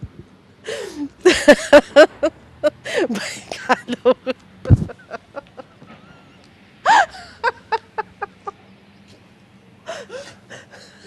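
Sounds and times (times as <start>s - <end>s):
woman laughing hard: 0.7s - 8.6s.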